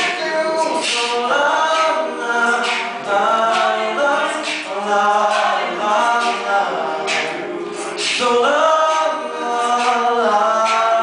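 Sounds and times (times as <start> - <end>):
male a cappella group singing: 0.0 - 11.0.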